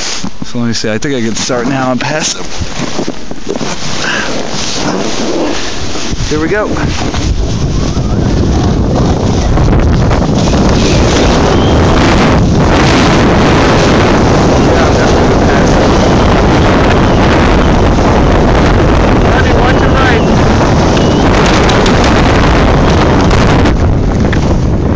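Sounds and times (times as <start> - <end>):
skis scraping on snow: 0.0 - 16.9
wind rushing over microphone: 0.0 - 24.9.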